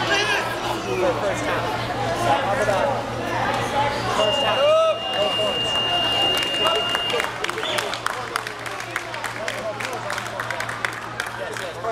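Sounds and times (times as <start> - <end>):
crowd voices: 0.0 - 11.9
high electronic timer tone: 4.2 - 7.2
scattered applause: 4.6 - 11.9.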